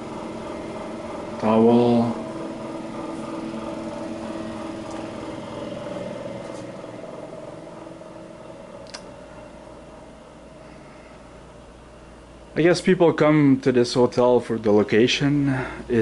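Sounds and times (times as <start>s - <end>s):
fan motor humming: 0.0s - 16.0s.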